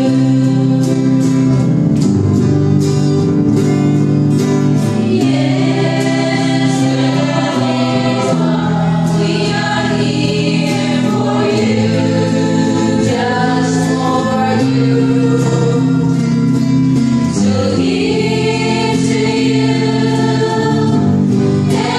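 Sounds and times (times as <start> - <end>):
group singing worship song: 0.0 - 2.1, 4.4 - 21.9
strummed guitars: 0.0 - 21.9.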